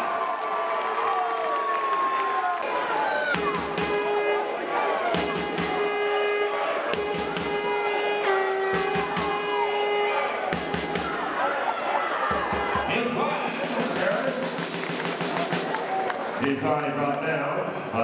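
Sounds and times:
crowd shouting and cheering: 0.0 - 18.0
music with drum beat: 3.4 - 4.4, 5.1 - 6.3, 6.9 - 11.4, 12.3 - 16.0.

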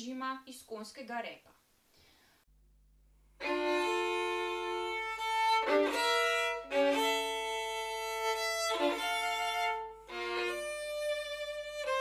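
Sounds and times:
violin sustained bowed notes: 3.4 - 12.0.

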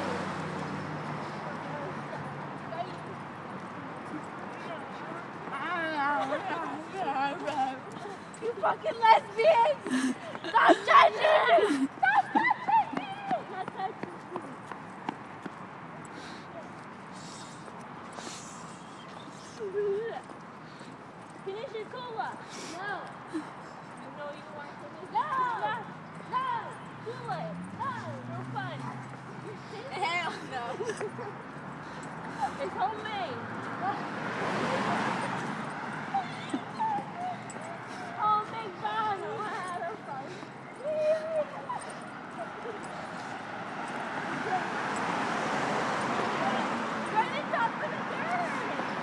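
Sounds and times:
footsteps on asphalt: 0.2 - 49.0.

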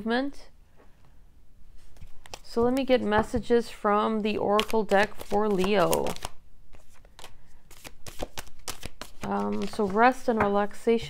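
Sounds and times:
cards being shuffled: 1.8 - 3.1, 4.4 - 10.4.

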